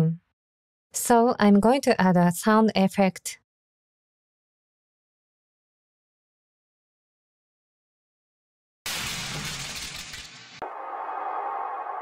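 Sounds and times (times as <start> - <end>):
noisy crash: 8.9 - 12.0.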